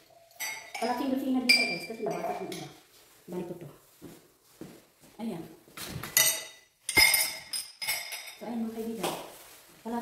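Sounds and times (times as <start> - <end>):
dishware clinking: 0.0 - 2.9, 6.0 - 8.7.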